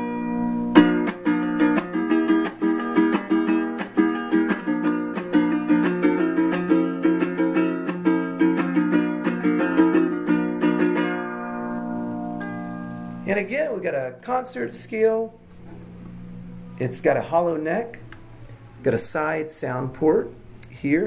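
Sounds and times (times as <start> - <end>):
ukulele strummed in quick chords: 0.0 - 13.3.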